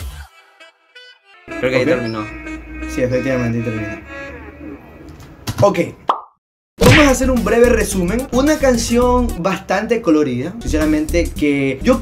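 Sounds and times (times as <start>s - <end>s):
person talking: 1.5s - 4.0s
person speaking: 1.5s - 4.1s.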